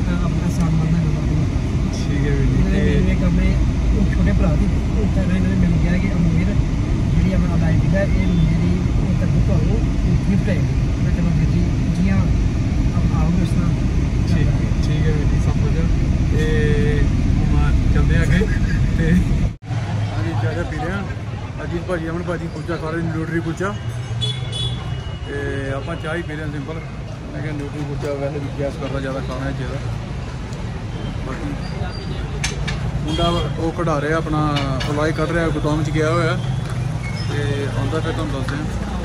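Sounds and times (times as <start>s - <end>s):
man talking: 0.0s - 19.5s
car engine and road noise: 0.0s - 39.0s
vehicle horn: 24.2s - 25.2s.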